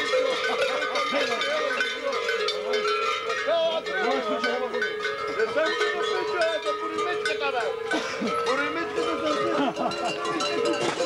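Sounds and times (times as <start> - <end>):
crowd voices: 0.0 - 11.0
large bells clanging: 0.0 - 11.0.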